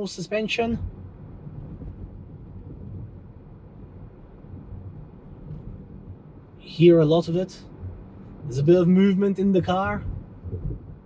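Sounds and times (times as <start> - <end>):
road and suspension rumble: 0.0 - 11.0.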